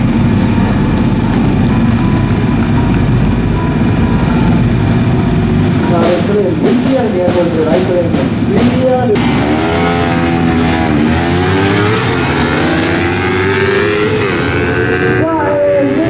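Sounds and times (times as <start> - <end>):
motorcycles accelerating hard: 0.0 - 16.0.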